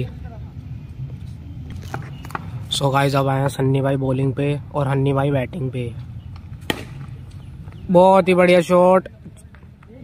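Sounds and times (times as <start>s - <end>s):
cricket bat striking ball: 6.6s - 7.3s.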